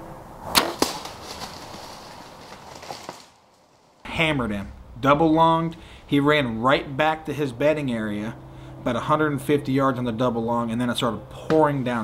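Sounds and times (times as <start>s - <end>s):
arrow hitting: 0.4s - 3.2s
deer running through leaves: 0.6s - 4.1s.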